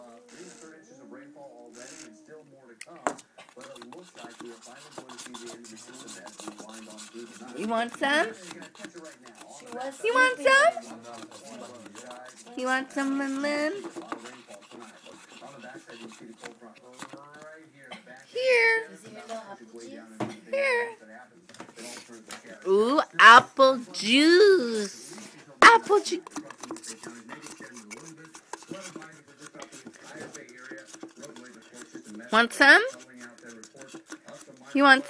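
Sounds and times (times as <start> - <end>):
faint background speech: 0.0 - 35.0
faint voices: 0.0 - 35.0
rubbing and handling noises: 2.9 - 19.5, 21.5 - 35.0.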